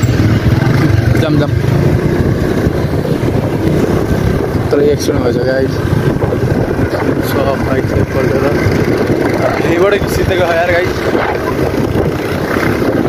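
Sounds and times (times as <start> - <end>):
motorbike engine and road rumble: 0.0 - 13.0
wind buffeting microphone: 0.0 - 13.0.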